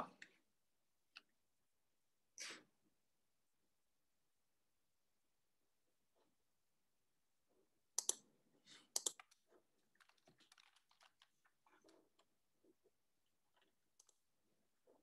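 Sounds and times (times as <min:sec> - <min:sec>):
light typing: 0:08.0 - 0:08.2, 0:08.8 - 0:12.3.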